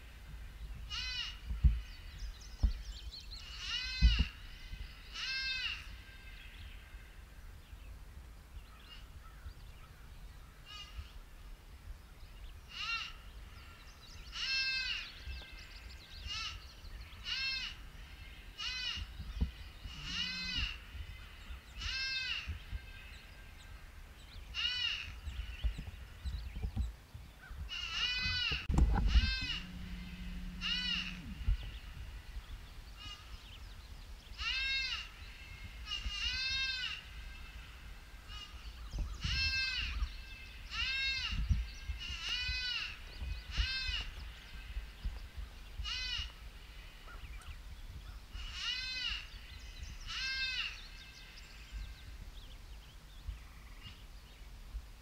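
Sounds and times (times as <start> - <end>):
low rumble on microphone: 0.0 - 12.7, 13.3 - 55.0
predator call distress cries: 0.9 - 1.4, 3.5 - 4.4, 5.1 - 6.4, 12.7 - 13.2, 14.3 - 15.1, 17.2 - 17.8, 18.6 - 19.1, 19.9 - 20.8, 21.8 - 22.5, 24.6 - 25.1, 27.7 - 32.0, 34.4 - 35.1, 40.7 - 41.4, 42.0 - 44.2, 45.8 - 46.3, 48.4 - 49.3, 50.1 - 50.8
microphone bump: 28.2 - 31.9.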